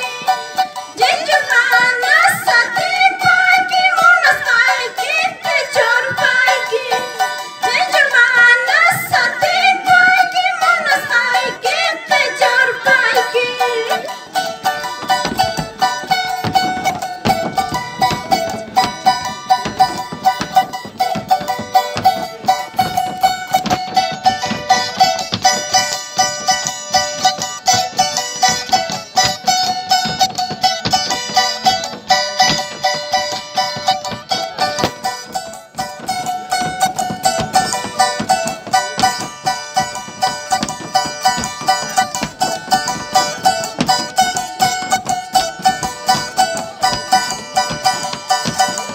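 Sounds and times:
charango strummed fast: 0.0s - 48.9s.

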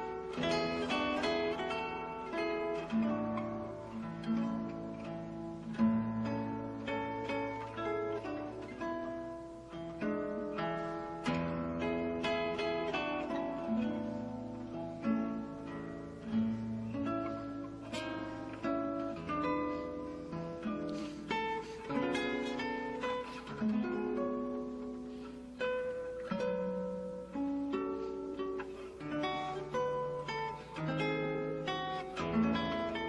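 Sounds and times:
plucked string music: 0.0s - 33.0s.

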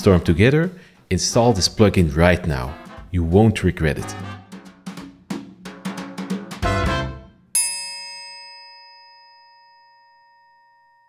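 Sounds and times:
drum hits: 2.7s - 3.2s, 4.0s - 7.4s
bell-like chime: 7.5s - 11.0s.

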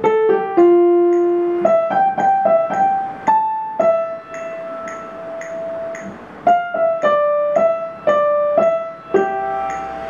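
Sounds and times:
piano notes ringing: 0.0s - 10.0s.

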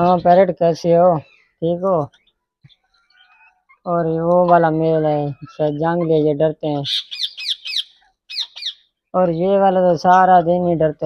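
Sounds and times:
parakeets shrill calls: 6.8s - 8.9s.

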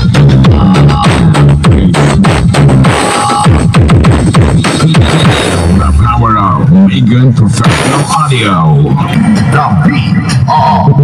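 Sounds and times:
deep bass: 0.0s - 11.0s
loud distorted voice from speakers: 0.0s - 11.0s.

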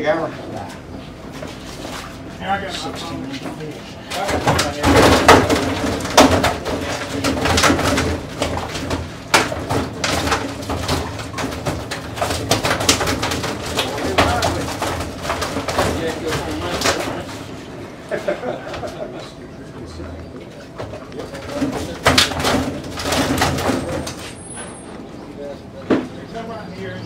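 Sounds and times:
plastic rustling: 1.3s - 17.7s.

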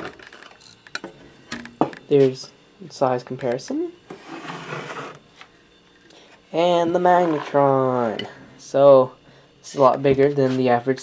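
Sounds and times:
metal rubbing and scraping: 4.1s - 5.3s, 6.8s - 8.2s.

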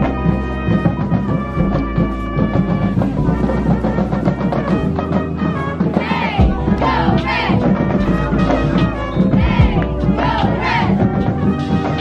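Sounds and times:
music with a beat: 0.0s - 12.0s
cheerleaders shouting: 6.0s - 7.8s, 8.8s - 11.1s.

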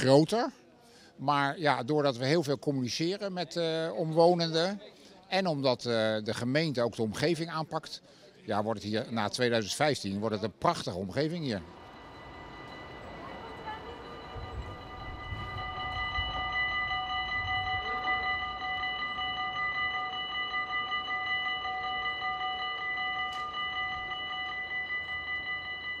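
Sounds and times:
level crossing bell ringing: 11.2s - 26.0s.

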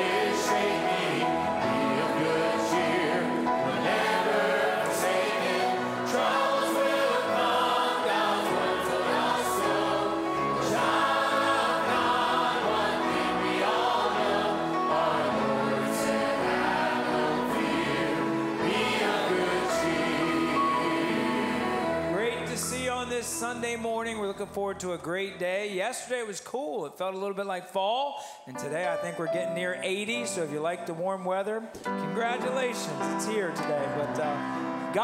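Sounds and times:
choir singing gospel: 0.0s - 23.1s.

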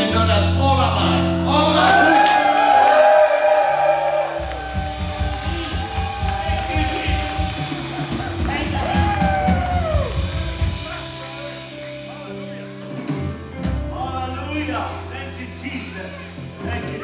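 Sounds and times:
worship band playing: 0.0s - 17.0s
drums on a quick steady beat: 4.3s - 12.2s.

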